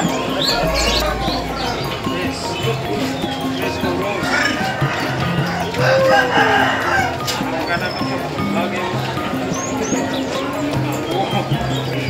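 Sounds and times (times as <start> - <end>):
background chatter: 0.0 - 12.0
rooster crowing: 4.3 - 7.1.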